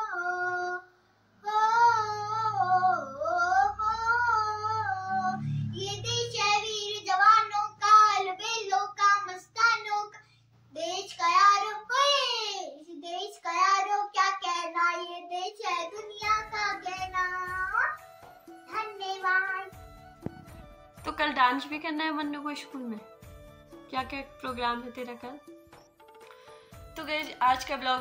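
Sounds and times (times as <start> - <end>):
girl singing unaccompanied: 0.0 - 19.9.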